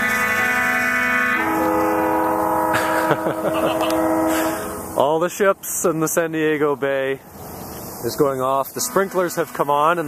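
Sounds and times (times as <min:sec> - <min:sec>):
ships' horns blasting: 0:00.0 - 0:05.4, 0:08.5 - 0:10.0.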